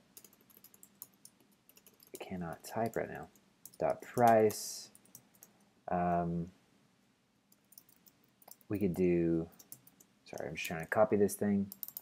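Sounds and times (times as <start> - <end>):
faint keyboard typing: 0.0 - 5.6, 7.5 - 12.0.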